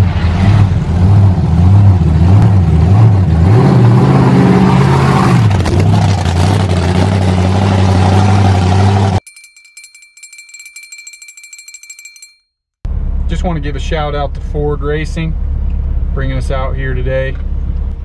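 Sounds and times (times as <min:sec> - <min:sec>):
monster truck engine revving: 0:00.0 - 0:09.2.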